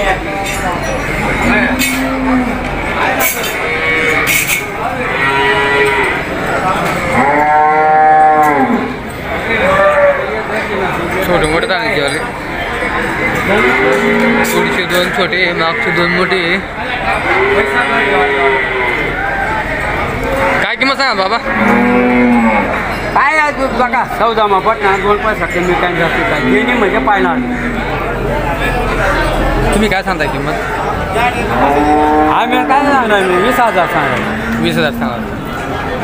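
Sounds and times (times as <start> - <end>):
cattle mooing: 1.2 - 9.0, 13.3 - 16.6, 17.2 - 19.2, 21.3 - 23.0, 24.6 - 28.2, 31.3 - 35.7.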